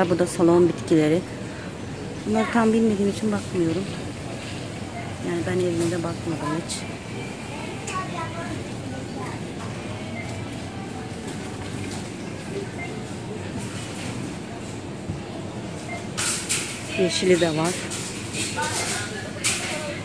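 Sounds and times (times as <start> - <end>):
faint voices of shoppers: 0.0 - 20.0
steady background hum: 0.0 - 20.0.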